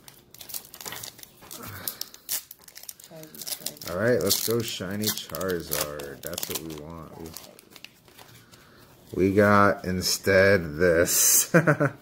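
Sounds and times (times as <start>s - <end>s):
foil wrapper crinkling and tearing: 0.0s - 9.4s.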